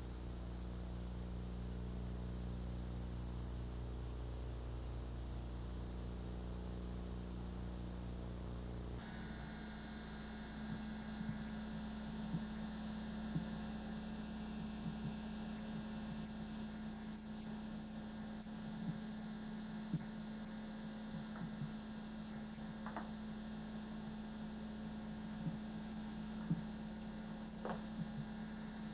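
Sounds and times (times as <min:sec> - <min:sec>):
electrical hum: 0:00.0 - 0:28.9.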